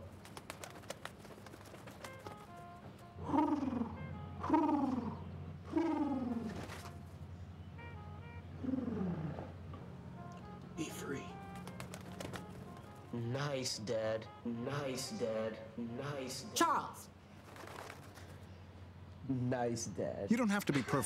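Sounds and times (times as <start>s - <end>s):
low pigeon-like coos: 3.2s - 7.0s, 8.6s - 9.6s.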